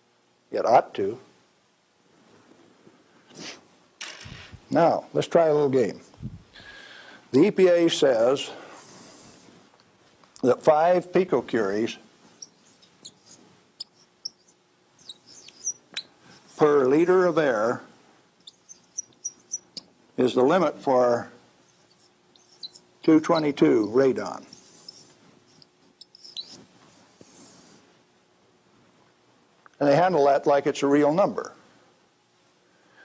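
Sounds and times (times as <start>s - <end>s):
marker squeaking on whiteboard: 12.3s - 16.9s, 18.4s - 19.9s, 21.6s - 27.6s.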